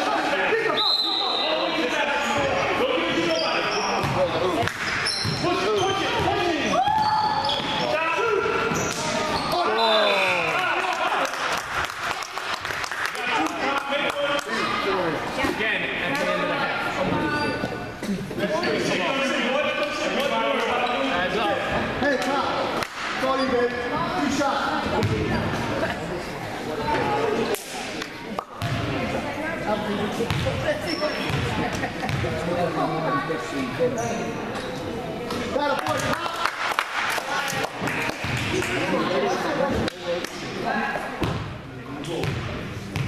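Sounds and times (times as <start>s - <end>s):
sneaker squeaks: 0.7s - 10.0s, 17.0s - 17.8s, 24.9s - 25.9s, 30.3s - 32.2s, 33.9s - 34.9s
people talking: 13.1s - 36.5s.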